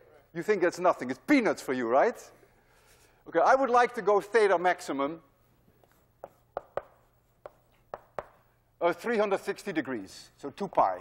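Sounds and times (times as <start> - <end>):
chalk knocking on blackboard: 5.8 - 8.4.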